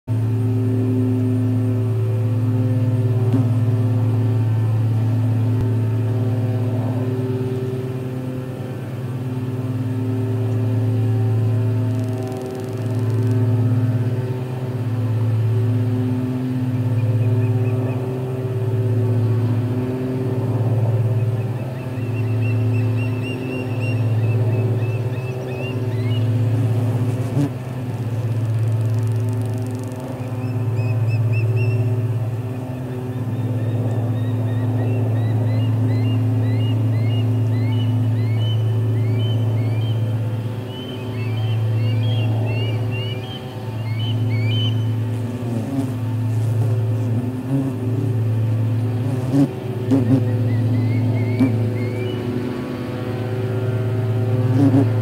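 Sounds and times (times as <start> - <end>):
low mechanical hum: 0.1 - 55.0.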